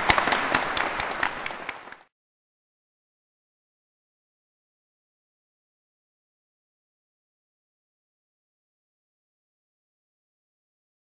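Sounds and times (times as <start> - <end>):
audience clapping: 0.0 - 2.1.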